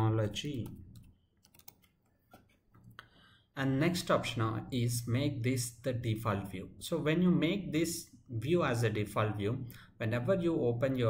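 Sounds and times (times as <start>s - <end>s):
keyboard keystrokes: 0.5s - 2.0s.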